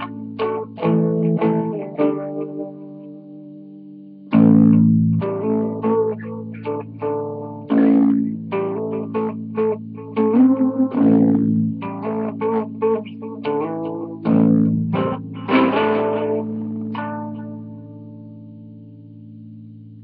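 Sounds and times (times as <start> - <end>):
electric guitar riff: 0.0 - 20.0.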